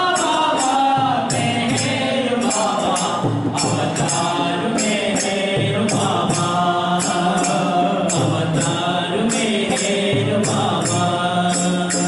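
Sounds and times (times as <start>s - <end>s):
group singing long notes: 0.0s - 12.0s
hand percussion jingling: 0.0s - 12.0s.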